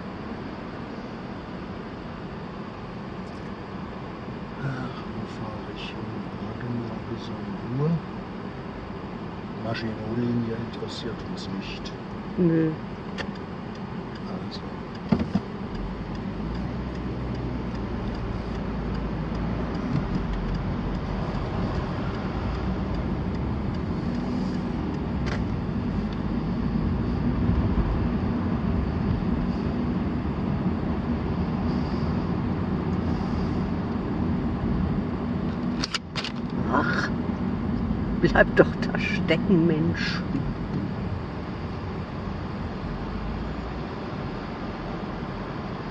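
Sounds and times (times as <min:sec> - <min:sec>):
car engine and road noise: 0:00.0 - 0:45.9
sharp click: 0:35.7 - 0:36.6.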